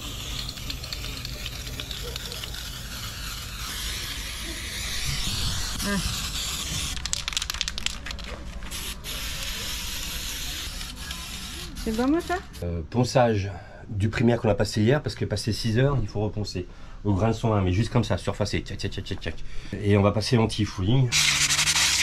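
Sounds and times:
aerosol can spraying hiss: 0.0 - 7.2, 8.6 - 11.6.

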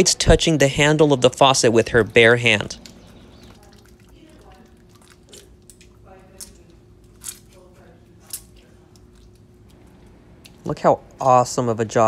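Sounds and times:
wet squelches: 0.0 - 11.2
faint steady hum: 0.0 - 12.0
soapy hands rubbing: 0.0 - 12.0.

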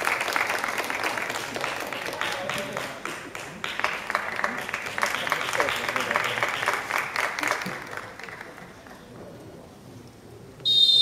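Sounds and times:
spectators clapping and calling: 0.0 - 9.0
shrill referee's whistle blast: 10.7 - 11.0.

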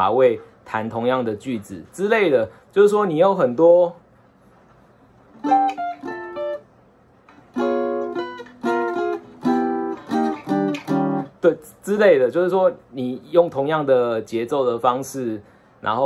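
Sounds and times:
plucked guitar notes: 5.3 - 6.7, 7.3 - 11.4
short guitar chords: 5.4 - 6.7, 7.4 - 11.6.

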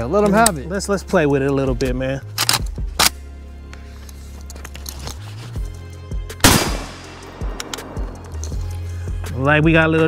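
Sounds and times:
rifle shot: 6.4 - 8.0.

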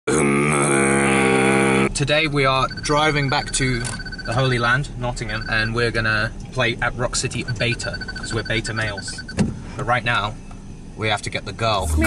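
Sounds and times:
person holding low vocal note: 0.1 - 2.0.

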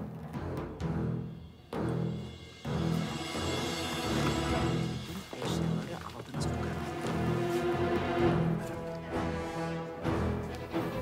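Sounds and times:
dramatic orchestral score: 0.0 - 11.0
low beating pulse: 0.0 - 11.0.

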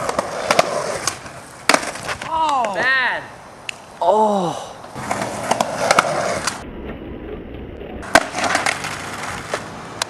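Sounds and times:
skateboard and skater hitting road: 0.0 - 3.0, 4.9 - 10.0
skateboard wheels rolling on asphalt: 0.0 - 3.9, 4.8 - 10.0
skateboard clacks: 8.0 - 10.0.

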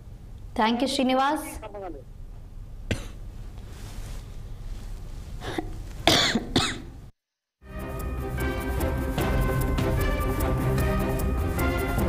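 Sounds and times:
person coughing: 2.9 - 3.2, 5.4 - 6.9.

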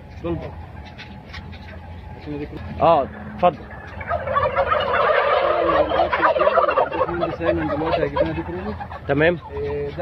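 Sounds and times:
turkeys gobbling: 0.0 - 10.0.

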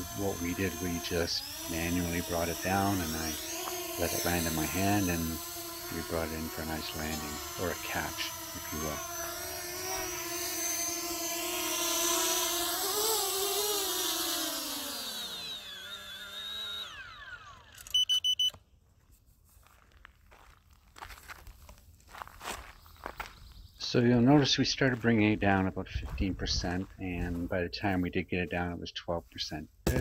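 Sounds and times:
drone propeller motors whining: 0.0 - 18.6
rapid high beeps: 17.9 - 18.5.

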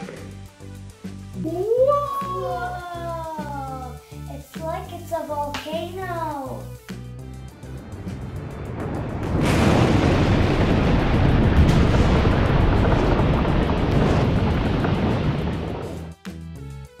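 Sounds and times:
background music: 0.0 - 11.8, 15.9 - 17.0
foam rushing and rumbling: 7.6 - 16.1.

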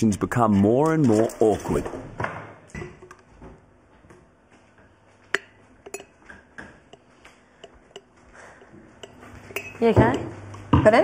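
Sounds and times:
kitchen utensils and dishes clinking: 5.3 - 11.0.

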